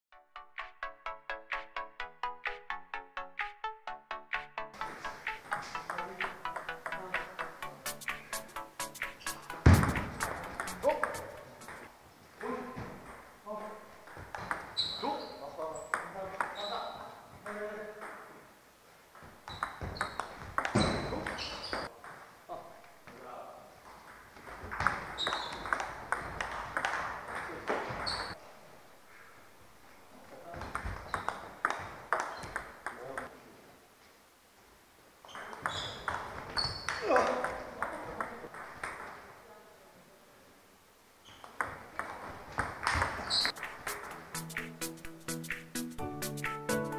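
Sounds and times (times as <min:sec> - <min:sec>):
table tennis ball clicking: 0:05.4 - 0:07.6.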